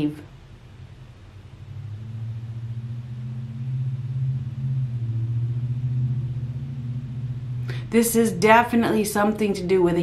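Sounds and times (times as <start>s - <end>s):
low drone with slight flutter: 0.0s - 10.0s.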